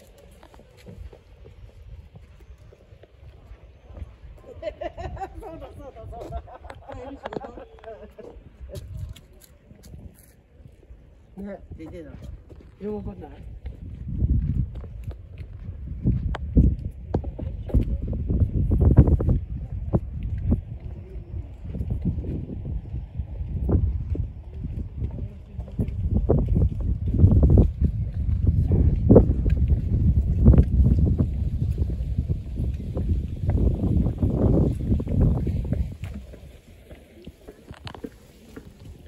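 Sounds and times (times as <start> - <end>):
wind rumbling on microphone: 0.0 - 39.0
faint voices: 19.3 - 26.6, 35.2 - 39.0.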